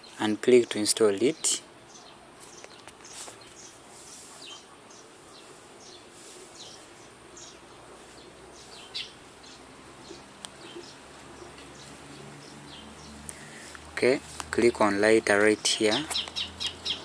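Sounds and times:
faint bird chirping: 0.0 - 17.0.

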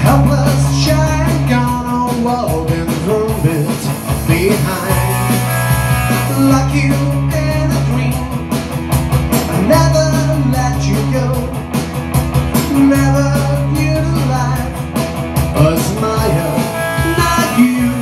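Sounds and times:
man singing into microphone: 0.0 - 5.5, 6.2 - 8.5, 9.5 - 11.6, 12.6 - 14.8, 15.5 - 18.0
electric guitar strumming: 0.0 - 18.0.

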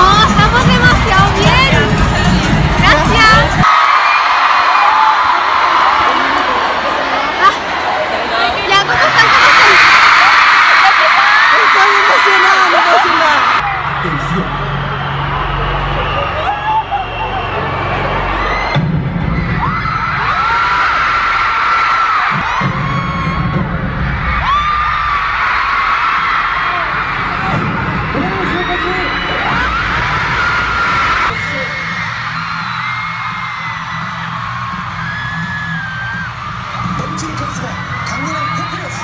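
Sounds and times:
concert music with pulsing beat: 0.0 - 3.6, 14.5 - 39.0
crowd screaming: 2.5 - 39.0.

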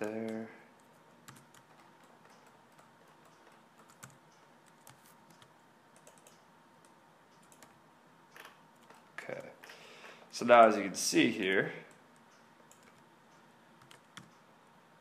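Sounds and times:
computer keyboard clicks and taps: 0.0 - 9.5, 11.9 - 13.0, 13.8 - 14.4.

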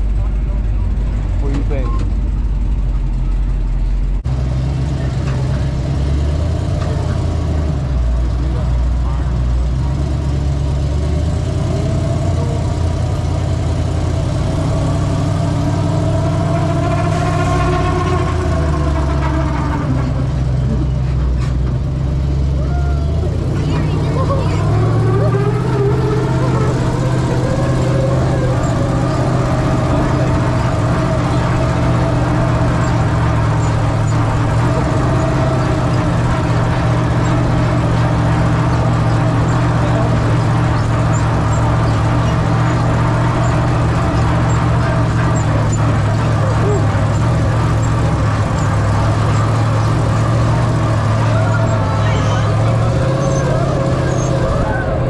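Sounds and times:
truck engine revving: 0.0 - 55.0.

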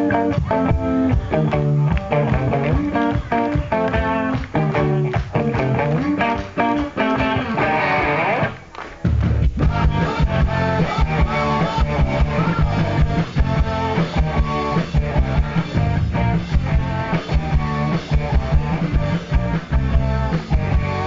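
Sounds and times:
bass guitar: 0.0 - 21.0
drums: 0.0 - 21.0
electric guitars: 0.0 - 21.0.

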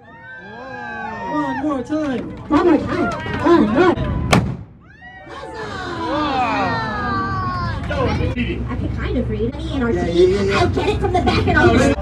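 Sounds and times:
sharp crack: 4.3 - 4.8
children shouting: 4.8 - 8.2.

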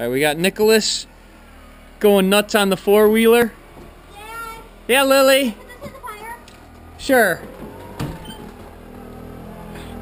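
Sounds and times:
atv engine running: 0.0 - 10.0.

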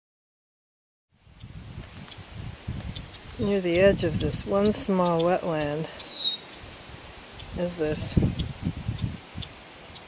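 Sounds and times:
marsh grass rustling: 1.2 - 10.0
wind buffeting microphone: 1.2 - 10.0
faint high chirps: 5.8 - 6.6.

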